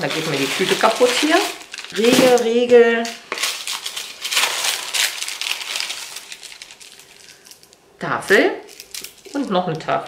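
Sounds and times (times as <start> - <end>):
paper and plastic wrapping crinkling: 0.0 - 10.0.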